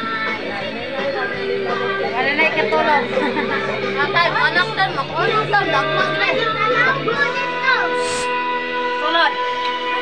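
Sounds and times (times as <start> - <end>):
children and adults talking: 0.0 - 8.3
background music: 0.0 - 10.0.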